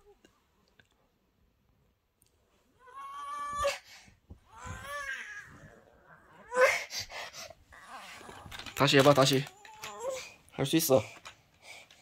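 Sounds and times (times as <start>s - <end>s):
young child whimpering: 2.8s - 8.8s, 9.5s - 10.4s.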